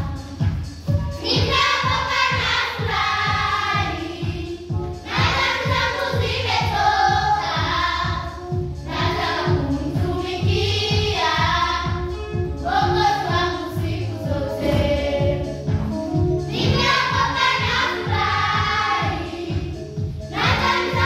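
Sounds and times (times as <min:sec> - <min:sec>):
musical accompaniment with steady beat: 0:00.0 - 0:21.0
children's choir singing: 0:01.2 - 0:12.0, 0:12.6 - 0:15.5, 0:16.5 - 0:21.0.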